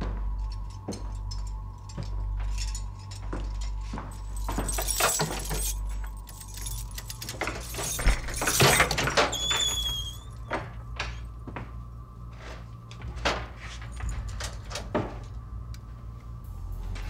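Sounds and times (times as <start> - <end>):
steady low hum: 0.0 - 17.0
key rattling in door lock: 0.5 - 10.5, 14.0 - 15.4
door squeak: 7.7 - 11.2.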